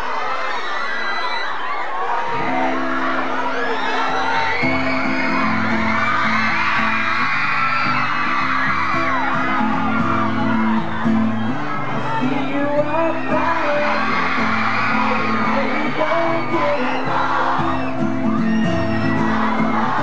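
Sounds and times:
crowd screaming and cheering: 0.0s - 20.0s
acoustic guitar chords: 4.4s - 20.0s.

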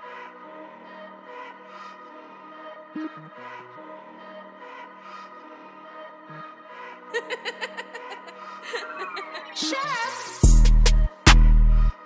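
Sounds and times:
person snickering: 7.2s - 9.5s
soft melodic trap beat: 8.2s - 12.0s.

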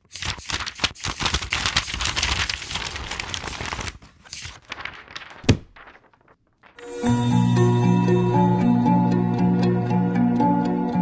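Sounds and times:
paper rustling and crinkling: 0.0s - 7.0s.

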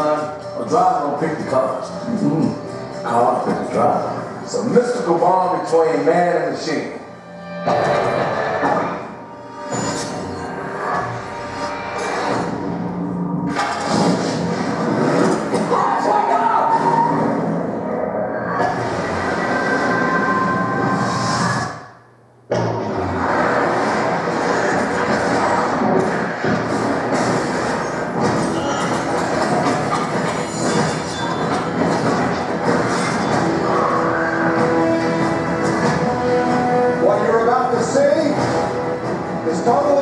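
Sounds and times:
film soundtrack over loudspeakers: 0.0s - 40.0s.

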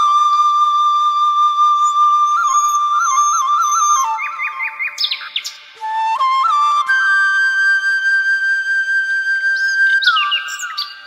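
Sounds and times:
flute melody: 0.0s - 11.0s
bird chirps: 2.4s - 5.8s, 9.6s - 11.0s.

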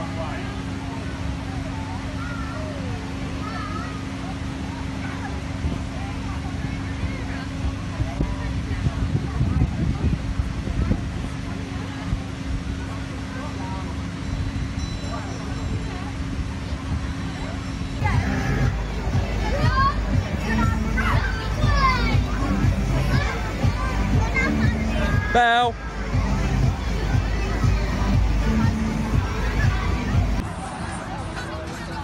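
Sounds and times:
distant children's voices: 0.0s - 32.0s
background music: 18.0s - 30.4s
children calling out: 18.0s - 30.4s
blower fan humming: 18.0s - 30.6s.

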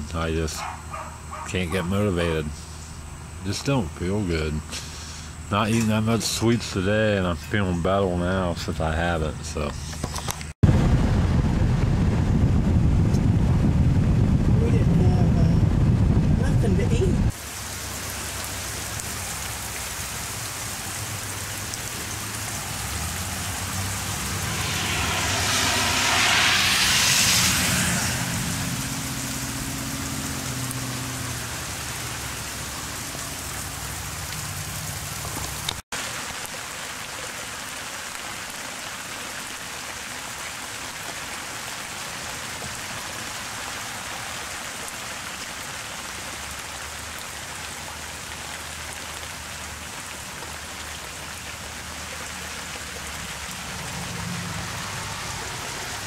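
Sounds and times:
steady rain falling: 0.0s - 56.0s
car tyres hissing on wet road: 4.7s - 5.4s, 16.8s - 56.0s
car engine hum: 20.2s - 35.8s.

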